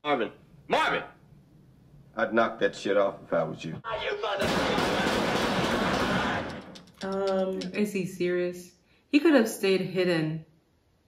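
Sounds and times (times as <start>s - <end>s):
rapid handgun fire: 4.4s - 6.7s.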